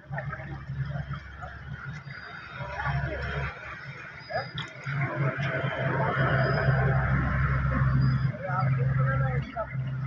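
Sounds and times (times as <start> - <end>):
low steady hum: 0.0 - 10.0
water running along a channel: 0.0 - 10.0.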